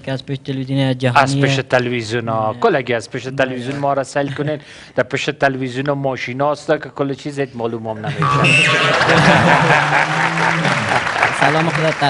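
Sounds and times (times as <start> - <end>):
audience applauding: 8.4 - 12.0.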